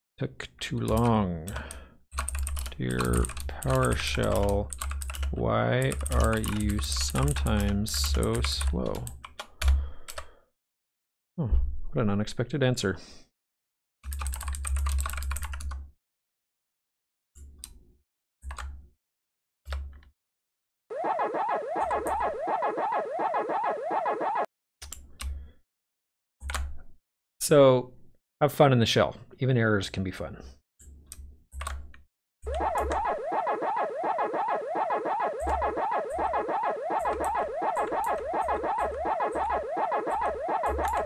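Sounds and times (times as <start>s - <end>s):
synthesized chomping sound effect: 20.9s - 24.5s, 32.5s - 41.0s.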